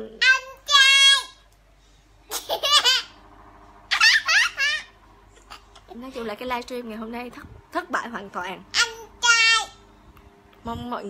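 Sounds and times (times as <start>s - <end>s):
high-pitched laughter: 3.9s - 5.7s.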